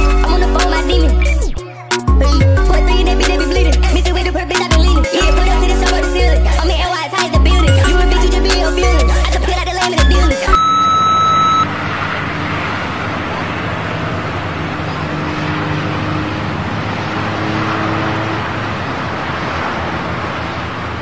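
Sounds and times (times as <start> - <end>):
high beep: 10.5 - 11.7
steady rushing noise: 11.6 - 21.0.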